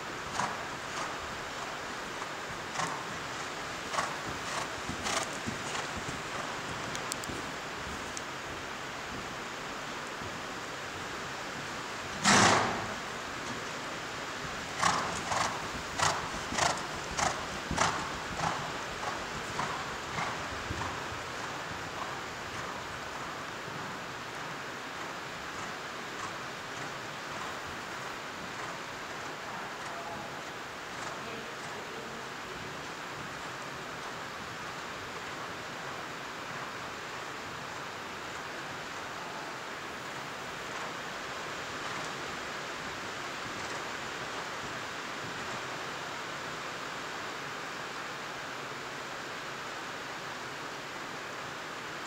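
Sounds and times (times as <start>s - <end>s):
rain on a tin roof: 0.0s - 52.0s
horse hoofbeats on sand: 0.1s - 35.7s.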